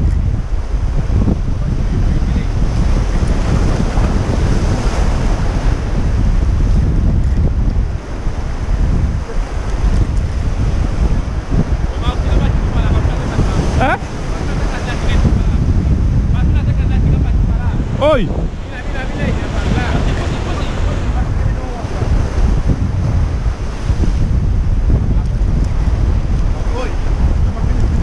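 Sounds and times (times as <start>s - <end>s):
surf breaking on rocks: 0.0s - 28.0s
wind buffeting microphone: 0.0s - 28.0s.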